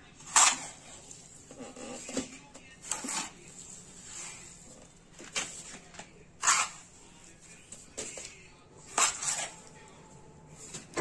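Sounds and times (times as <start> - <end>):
trowel scraping concrete floor: 0.2 - 5.7, 6.4 - 7.2, 8.9 - 9.7
shuffling of cement mix: 0.2 - 9.7.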